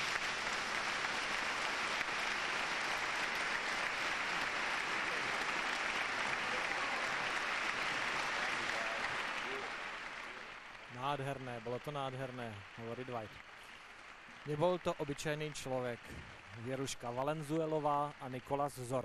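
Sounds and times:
large audience applauding: 0.0 - 19.0.

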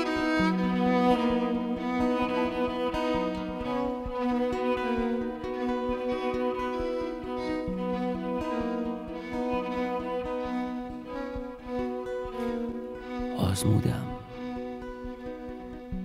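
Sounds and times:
guitar: 0.0 - 16.0
low rhythmic pulse: 0.0 - 16.0
violin and cello bowed notes: 0.0 - 16.0.

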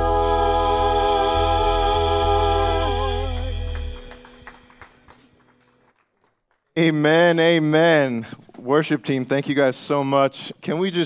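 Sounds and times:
organ keyboard chord: 0.0 - 5.1.

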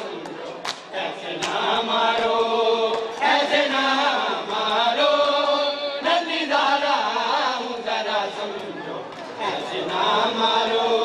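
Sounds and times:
mourning lament chanted: 0.0 - 11.0.

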